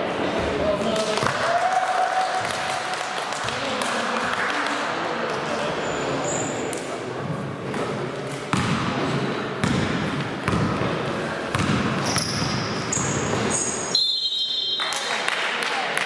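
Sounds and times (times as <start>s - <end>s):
players' voices: 0.0s - 13.7s
sneakers squeaking: 7.7s - 14.8s
basketball dribbling on gym floor: 9.6s - 10.8s, 11.5s - 12.6s
referee's whistle: 12.1s - 15.0s.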